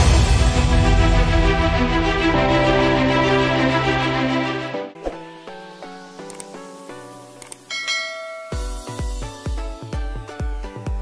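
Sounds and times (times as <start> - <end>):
background music: 0.0 - 11.0
bell chime notification: 7.7 - 9.2.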